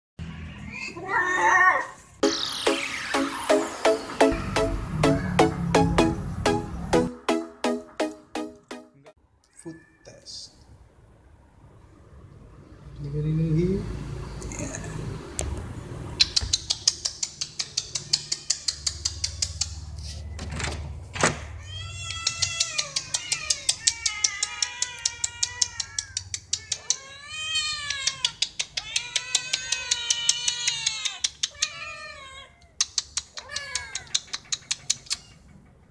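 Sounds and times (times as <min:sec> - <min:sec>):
cat yowling: 0:00.6 - 0:02.0, 0:21.6 - 0:32.8.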